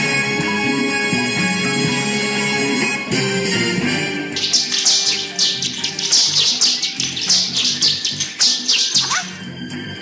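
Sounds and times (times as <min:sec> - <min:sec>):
film score: 0:00.0 - 0:10.0.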